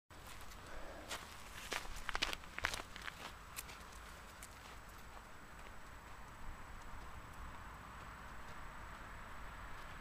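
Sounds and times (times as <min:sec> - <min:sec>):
footsteps on frosted grass: 0:00.1 - 0:09.1.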